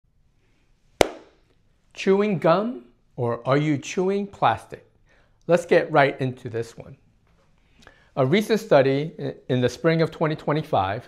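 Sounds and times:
hand clap: 1.0s - 1.4s.

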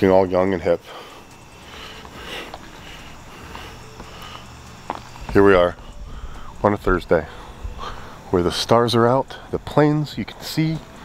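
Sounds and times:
low steady background noise: 0.0s - 11.0s
breathy hiss: 0.1s - 11.0s.

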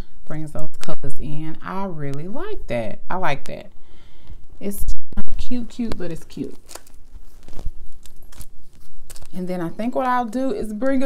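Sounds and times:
plastic sleeves rustling: 5.3s - 11.0s.

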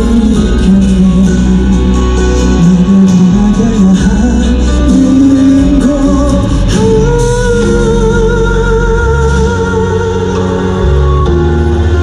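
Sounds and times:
live pop music: 0.0s - 12.0s.

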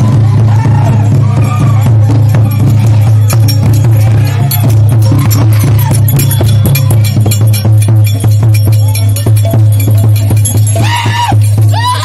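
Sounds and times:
fast loud drumming: 0.0s - 12.0s
metallic ringing: 2.0s - 12.0s.

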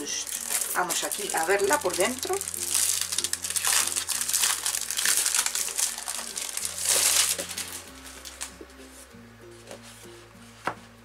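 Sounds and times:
plastic wrapping crinkling: 0.0s - 8.6s.

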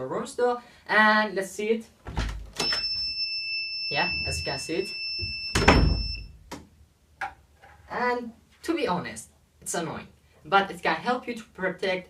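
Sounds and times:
high-pitched alarm buzzer: 2.6s - 6.3s
door knocking shut: 5.2s - 6.1s.

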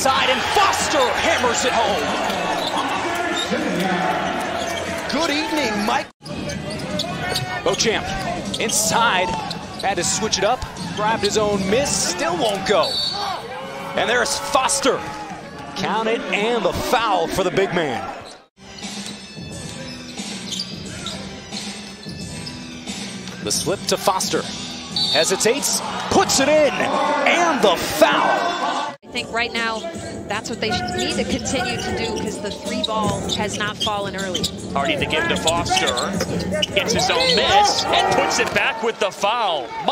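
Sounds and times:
voices in an arena: 0.0s - 18.4s, 23.4s - 39.9s
sneaker squeaks: 2.5s - 11.7s, 12.5s - 13.5s, 18.2s - 23.5s, 24.6s - 25.4s, 30.7s - 38.2s
background music: 18.6s - 39.9s.

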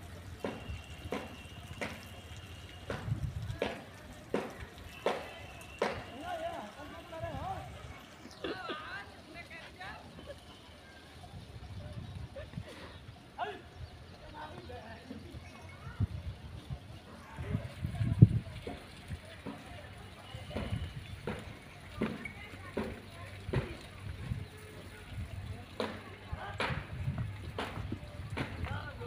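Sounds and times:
hooves thudding on ground: 0.4s - 7.0s
wind rumble on microphone: 2.9s - 3.6s, 11.2s - 12.7s, 15.8s - 19.4s, 23.4s - 29.0s.

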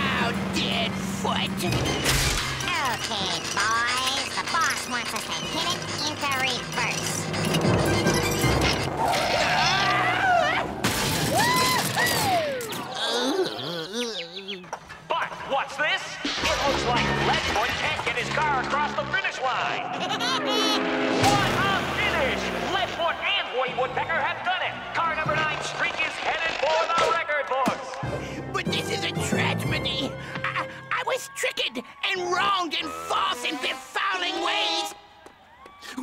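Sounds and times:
fast comic cartoon music: 0.0s - 10.2s, 16.4s - 27.4s, 28.4s - 30.7s, 32.2s - 34.9s
cartoon sound effects: 1.5s - 7.2s, 19.9s - 23.0s.

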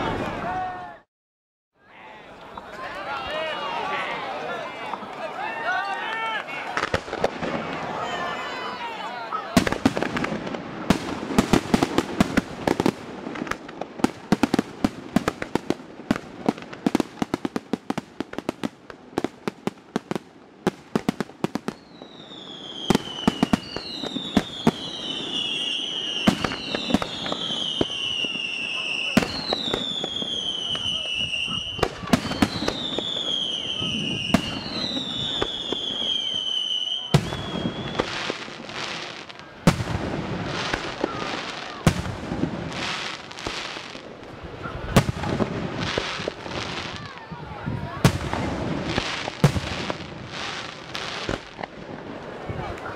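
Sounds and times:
heavy firework bangs: 6.6s - 8.2s, 9.5s - 52.2s
descending firework whistles: 21.6s - 39.8s.

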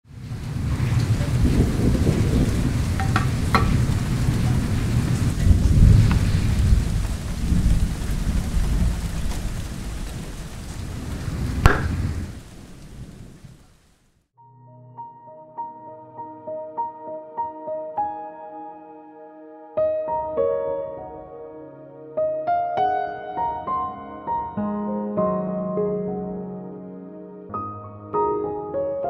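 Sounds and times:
low thunder rumbles: 0.1s - 13.8s
steady rain: 0.1s - 14.2s
sharp thunder cracks: 0.4s - 13.6s.

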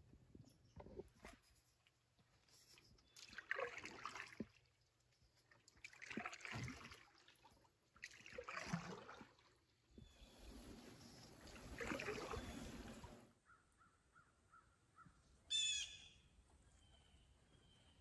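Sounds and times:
canoe paddle strokes in water: 2.4s - 13.3s.

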